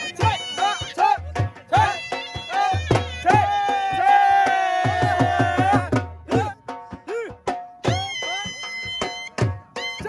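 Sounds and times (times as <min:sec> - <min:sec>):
dhol drum strokes: 0:00.0 - 0:10.0.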